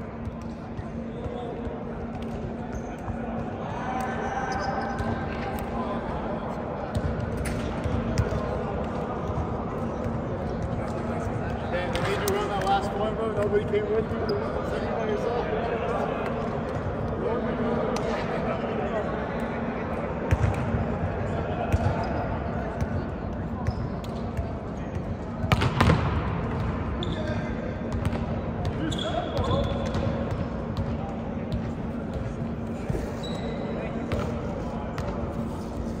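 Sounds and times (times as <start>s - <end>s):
people chattering in a gym: 0.0s - 36.0s
balls bouncing on hardwood court: 6.9s - 12.8s, 20.3s - 20.8s, 21.7s - 22.0s, 22.8s - 33.1s, 35.0s - 35.2s.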